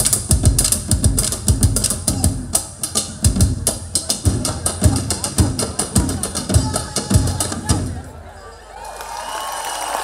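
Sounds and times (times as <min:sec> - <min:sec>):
hand drums fast rhythm: 0:00.0 - 0:08.0.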